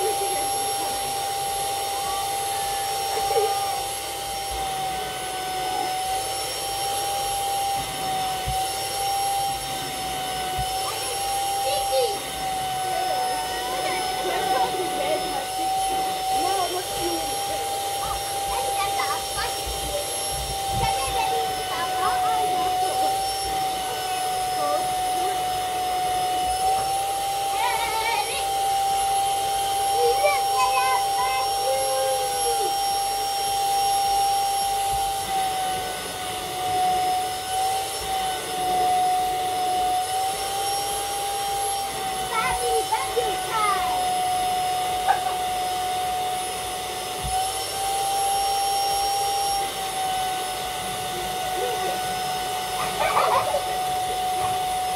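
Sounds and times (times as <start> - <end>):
vacuum cleaner whining: 0.0 - 54.9.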